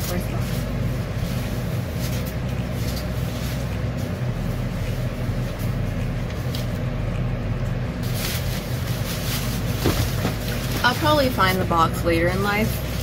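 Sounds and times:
steady low hum: 0.0 - 13.0
plastic cape rustling: 8.0 - 11.6.

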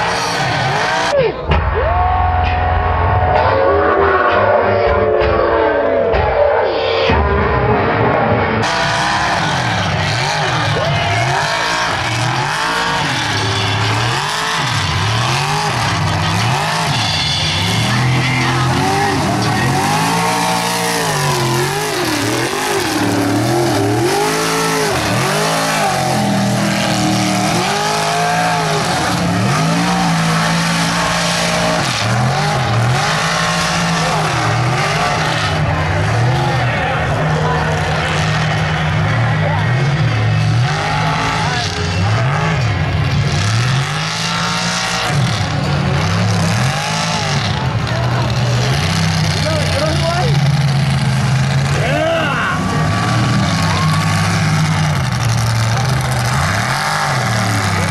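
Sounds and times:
truck engines revving: 0.0 - 57.9.

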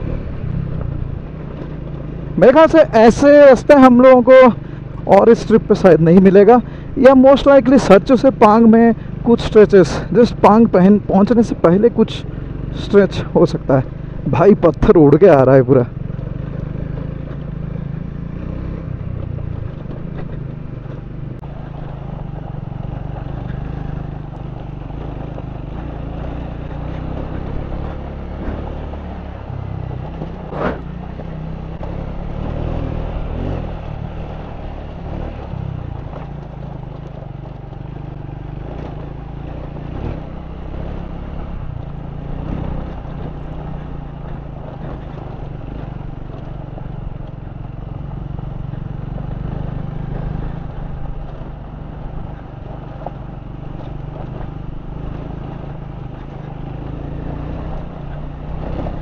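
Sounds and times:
motorcycle engine running: 0.0 - 59.0.

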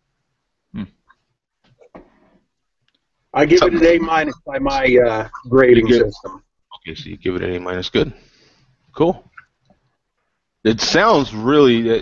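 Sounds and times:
faint small sounds: 0.0 - 12.0
man vocal noise: 0.7 - 1.1, 3.6 - 6.9.

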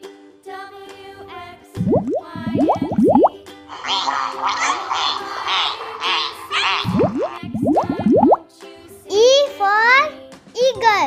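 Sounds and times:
children's background music: 0.0 - 11.0
rising bloop sound effects: 1.8 - 3.4, 6.4 - 8.4
raspy chattering call: 3.7 - 7.4.

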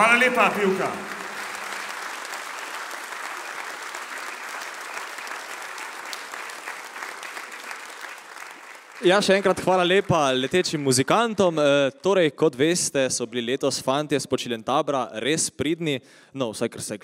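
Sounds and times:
audience applauding: 0.0 - 12.2.

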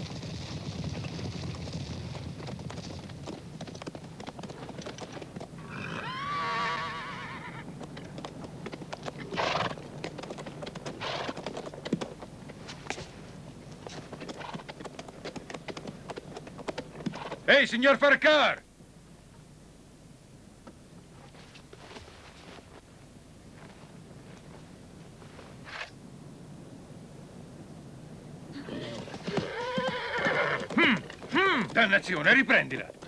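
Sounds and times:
hooves clopping on stony ground: 0.0 - 17.8, 28.5 - 33.0
horse whinnying: 5.6 - 7.7, 9.3 - 9.8, 11.0 - 11.4, 28.5 - 31.8.

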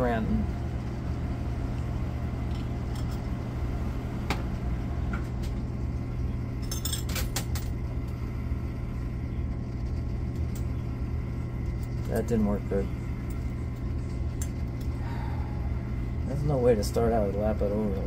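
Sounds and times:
steady low hum: 0.0 - 18.0
coins clinking in machine: 6.6 - 7.7.

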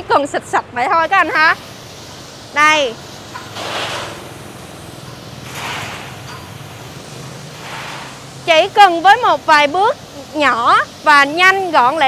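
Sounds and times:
mist spray hissing: 0.0 - 12.0
pressure washer humming: 0.0 - 12.0.

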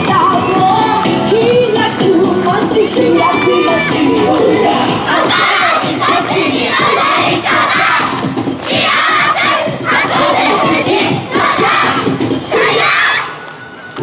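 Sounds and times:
dance music: 0.0 - 13.4.

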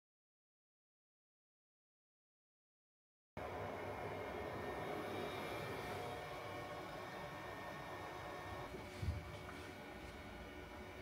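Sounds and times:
cooling fans humming: 3.4 - 11.0.

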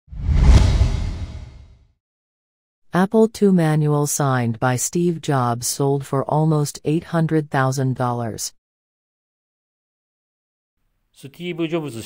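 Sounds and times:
whoosh with low rumble: 0.1 - 1.8.

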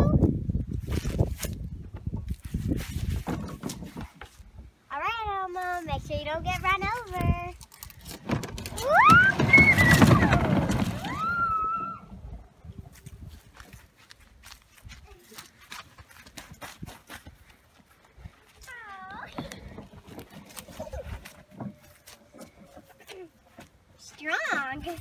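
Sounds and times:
toy car rolling on ground: 6.0 - 13.8, 19.2 - 25.0.

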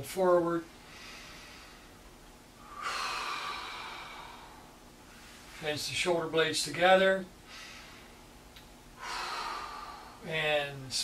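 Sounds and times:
person breathing deeply: 0.8 - 5.8, 7.4 - 8.3, 8.9 - 10.3.

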